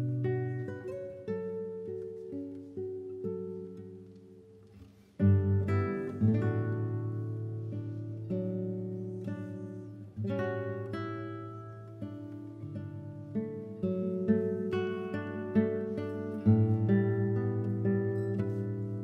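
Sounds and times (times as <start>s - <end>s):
classical guitars playing: 0.0s - 19.0s.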